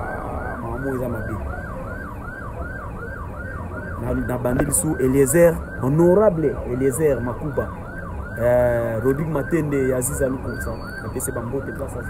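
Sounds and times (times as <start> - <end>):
siren-like wail: 0.0 - 12.0.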